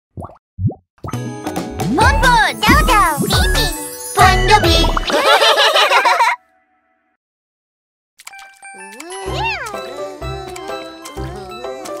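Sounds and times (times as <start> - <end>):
bright children's music: 1.1 - 6.4, 8.3 - 12.0.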